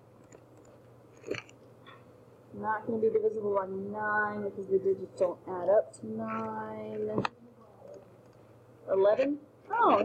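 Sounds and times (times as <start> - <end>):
computer mouse clicks: 0.2 - 1.7.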